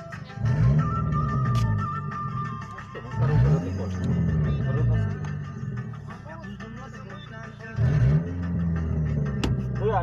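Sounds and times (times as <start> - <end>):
car engine revving: 0.0 - 10.0
music playing in car: 0.0 - 10.0.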